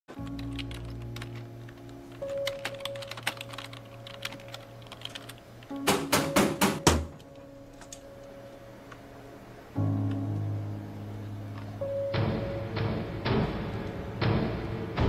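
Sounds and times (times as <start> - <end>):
heavy keystrokes: 0.1 - 8.4
keyboard typing clicks: 0.1 - 8.4
soft film score: 0.1 - 15.0.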